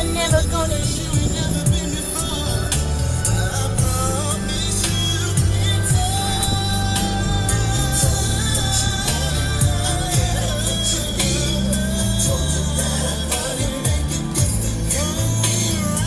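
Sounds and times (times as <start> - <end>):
song with singing over a beat: 0.0 - 16.0.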